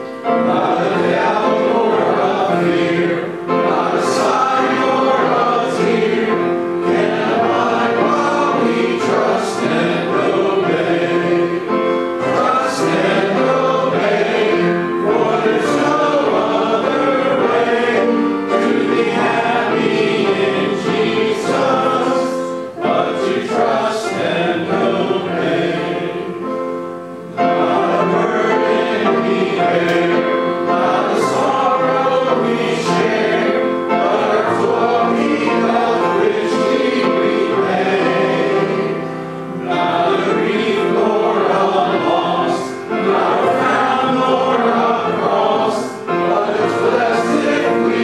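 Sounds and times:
congregation singing a hymn: 0:00.0 - 0:48.0
piano accompaniment: 0:00.0 - 0:48.0.

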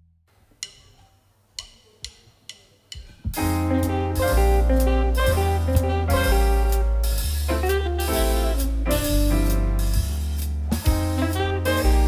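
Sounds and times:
jazz band playing: 0:03.3 - 0:12.0.

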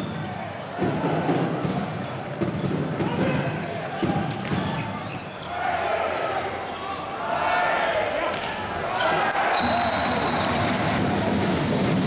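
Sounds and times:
crowd voices in sports hall: 0:00.0 - 0:12.0.

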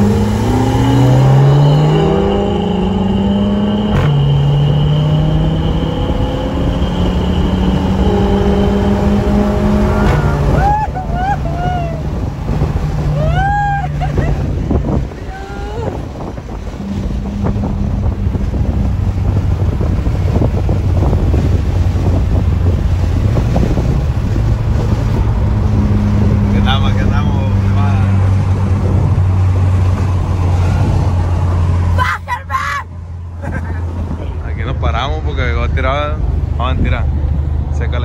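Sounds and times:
car engine drone inside cabin: 0:00.0 - 0:32.1
wind and road noise: 0:00.0 - 0:38.0
voices: 0:31.9 - 0:32.9.

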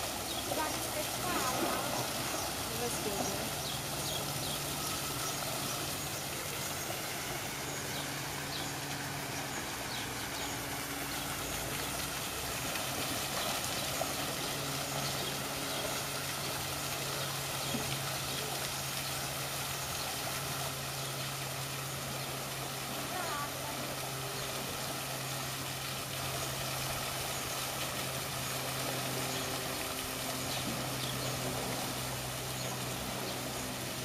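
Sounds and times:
waterfall pouring into pool: 0:00.0 - 0:07.2, 0:09.8 - 0:32.9
low machine hum: 0:00.0 - 0:34.0.

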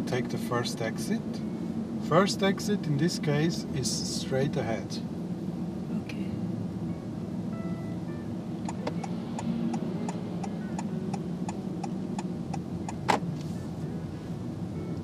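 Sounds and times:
rumble of moving car: 0:00.0 - 0:15.0
car turn indicator ticking: 0:08.6 - 0:13.2.

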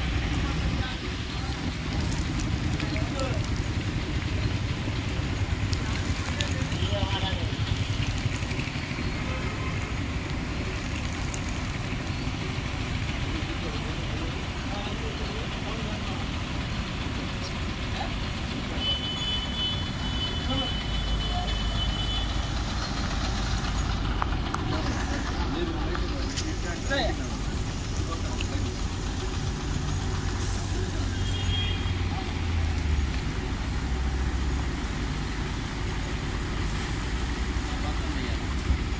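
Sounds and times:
bus engine rumble: 0:00.0 - 0:38.9
steady rain: 0:00.0 - 0:38.9
tyre hiss on wet road: 0:18.8 - 0:38.9.

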